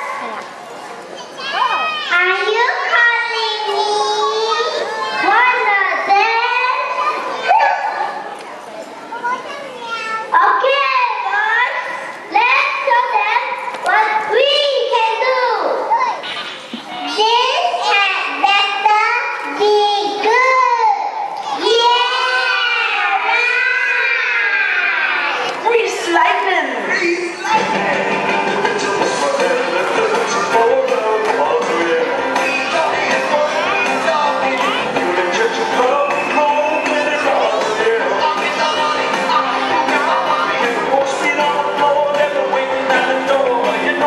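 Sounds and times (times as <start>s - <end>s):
children calling out: 0.0s - 28.0s, 29.3s - 44.0s
children singing: 28.7s - 44.0s.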